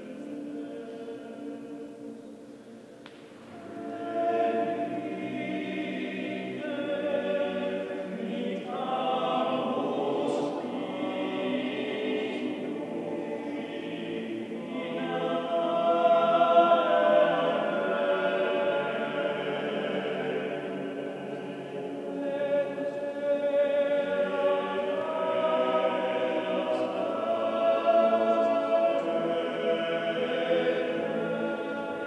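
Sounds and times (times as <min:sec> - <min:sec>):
male choir singing a cappella: 0:00.0 - 0:02.6, 0:03.4 - 0:32.0.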